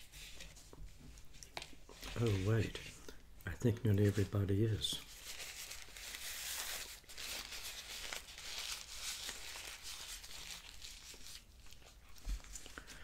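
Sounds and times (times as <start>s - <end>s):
paper crinkling and rustling: 0.0s - 3.0s, 4.0s - 13.0s.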